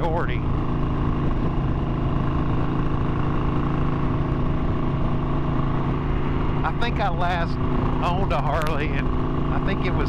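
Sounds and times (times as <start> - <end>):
motorcycle engine cruising: 0.0 - 10.0
road noise: 0.0 - 10.0.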